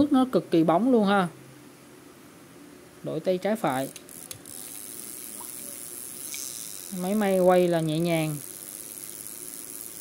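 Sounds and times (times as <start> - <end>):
spinning reel gear whirr: 3.4 - 10.0
reel click: 3.7 - 10.0.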